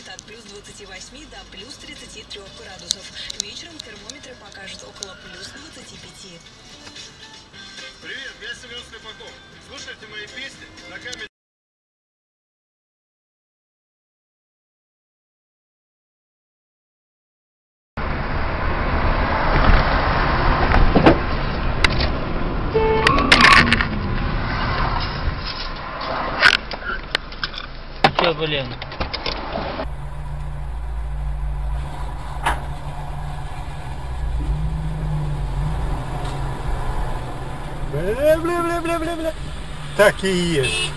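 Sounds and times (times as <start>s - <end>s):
car engine and road noise: 0.0s - 11.3s, 18.0s - 40.9s
background music: 2.0s - 11.3s
short tone: 22.7s - 23.9s
radio presenter talking: 37.9s - 40.9s.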